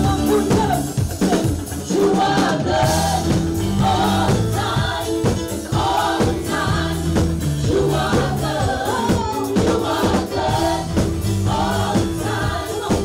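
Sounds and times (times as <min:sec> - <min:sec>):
choir singing in harmony: 0:00.0 - 0:13.0
live band: 0:00.0 - 0:13.0.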